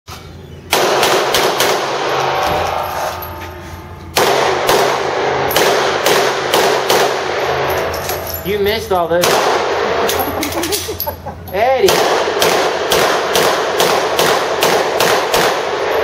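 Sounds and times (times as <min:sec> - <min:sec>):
handgun shots echoing indoors: 0:00.7 - 0:03.2, 0:04.1 - 0:08.4, 0:09.2 - 0:10.3, 0:11.8 - 0:16.0.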